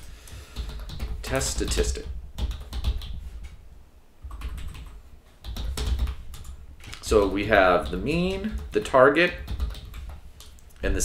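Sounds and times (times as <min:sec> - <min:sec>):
typing on computer keyboard: 0:00.6 - 0:03.2, 0:04.2 - 0:10.6.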